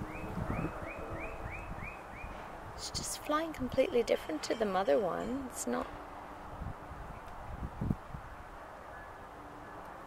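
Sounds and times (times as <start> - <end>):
wind rumble on microphone: 0.0 - 4.1, 5.0 - 10.0.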